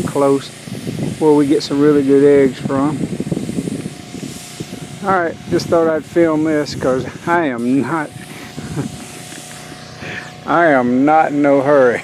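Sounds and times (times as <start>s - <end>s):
wind buffeting microphone: 0.0s - 9.3s.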